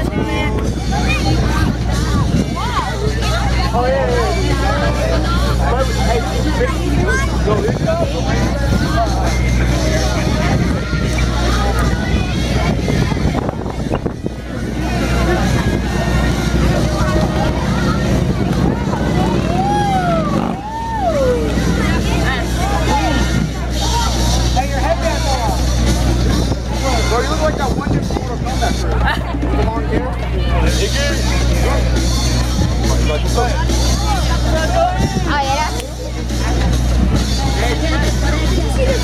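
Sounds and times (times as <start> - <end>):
crowd chattering: 0.0 - 39.0
dance music: 0.0 - 39.0
voice rising and falling in pitch: 19.0 - 22.0.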